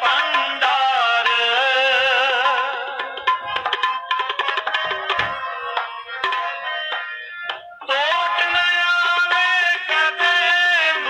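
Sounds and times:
rapid tabla strokes: 0.0 - 10.6
harmonium holding steady notes: 0.0 - 11.0
person singing: 7.8 - 11.0.

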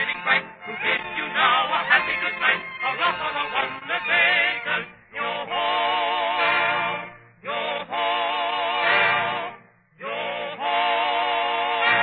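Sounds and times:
vocal group singing: 0.0 - 12.0.

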